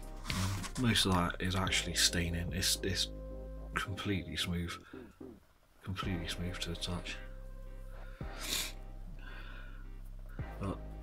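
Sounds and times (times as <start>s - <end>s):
faint background music: 0.0s - 11.0s
nose sniff: 8.2s - 8.8s.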